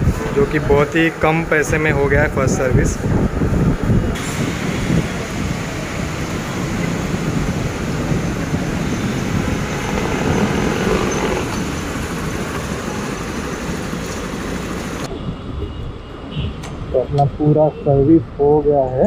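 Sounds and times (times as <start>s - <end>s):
street traffic roar: 0.0s - 19.0s
motorcycle engine running: 7.2s - 15.1s.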